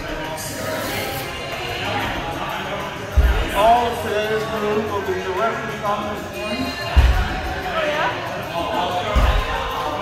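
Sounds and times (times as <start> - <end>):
background music with vocals: 0.0 - 10.0.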